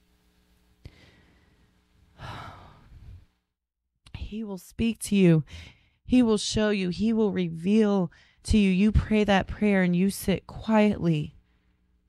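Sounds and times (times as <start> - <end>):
faint steady hum: 0.0 - 3.5, 4.1 - 12.0.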